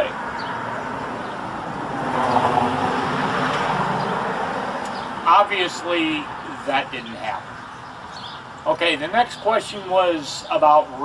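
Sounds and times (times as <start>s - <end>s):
car driving past: 0.3s - 5.3s.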